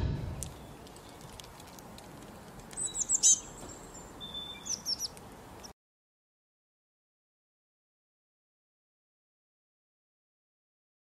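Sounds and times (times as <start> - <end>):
songbirds chirping: 0.3 - 5.8.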